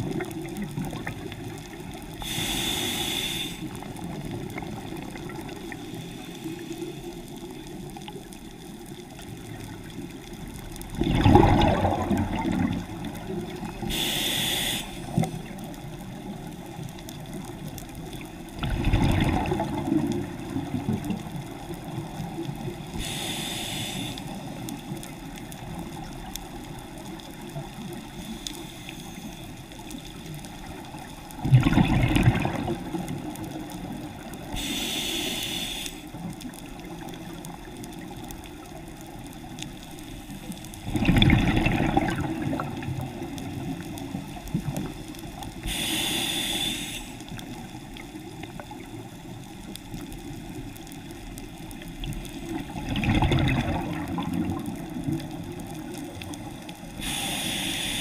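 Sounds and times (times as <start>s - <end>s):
regulator inhalation hiss: 2.1s - 3.9s, 13.8s - 15.4s, 22.9s - 24.6s, 28.1s - 29.5s, 34.4s - 36.3s, 45.6s - 48.0s, 56.9s - 58.0s
exhaled bubbles rushing: 10.9s - 13.9s, 18.6s - 22.1s, 31.3s - 34.4s, 40.8s - 45.0s, 52.0s - 56.0s.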